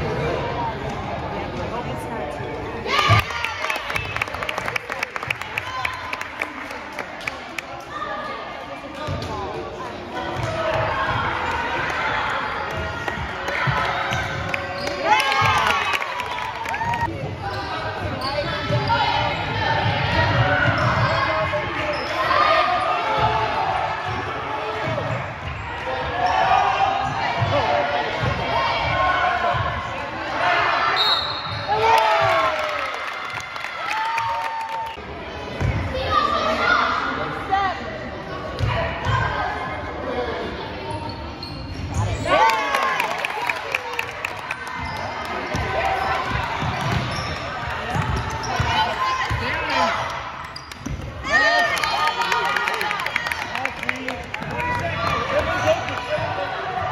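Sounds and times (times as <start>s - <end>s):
voices shouting in echoing hall: 5.6s - 56.9s.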